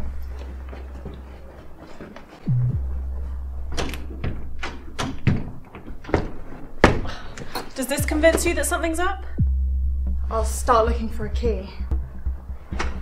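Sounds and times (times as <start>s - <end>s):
steady low hum: 0.0s - 5.5s, 7.9s - 13.0s.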